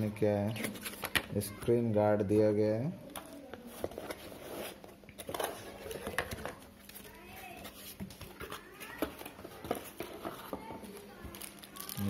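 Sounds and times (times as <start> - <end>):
plastic bags rustling: 3.5 - 12.0.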